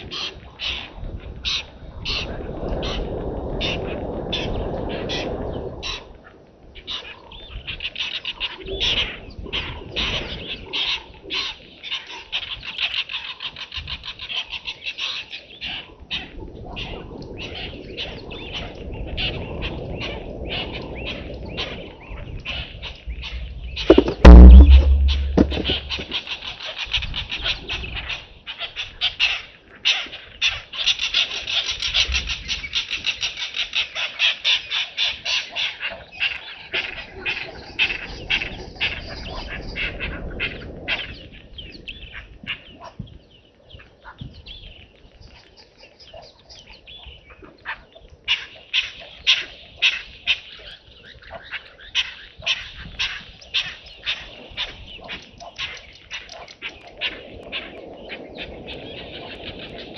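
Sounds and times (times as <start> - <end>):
wild birds chattering calls: 29.4 - 59.9.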